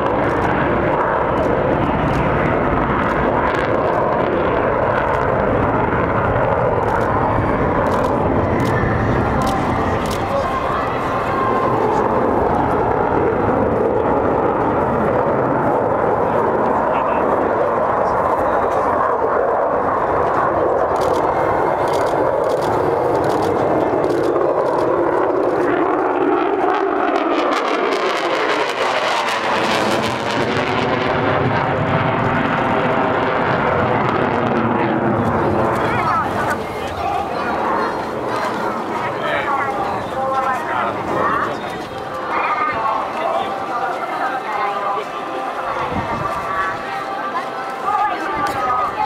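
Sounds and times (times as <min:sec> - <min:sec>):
jet engine flying overhead: 0:00.0 - 0:49.0.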